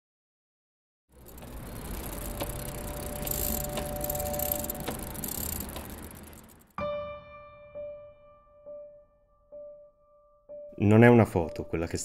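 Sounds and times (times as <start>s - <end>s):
bicycle clicks: 1.1s - 6.8s
bicycle rattling: 1.1s - 6.8s.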